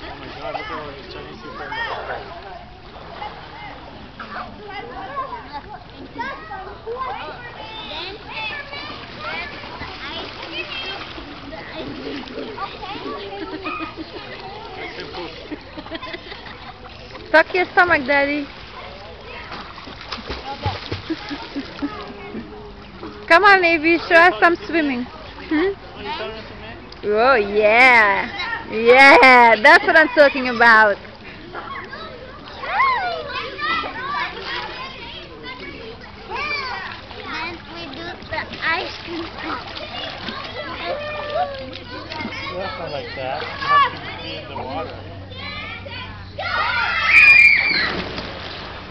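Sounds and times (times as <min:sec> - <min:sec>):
children shouting and chattering: 0:00.0 - 0:48.9
swimmers splashing in a pool: 0:00.0 - 0:48.9.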